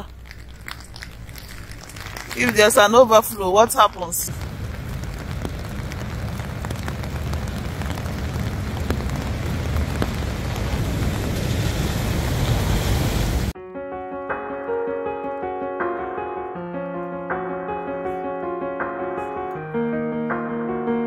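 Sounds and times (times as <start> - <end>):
rain and wind on microphone: 0.0 - 13.6
piano music: 13.5 - 21.0.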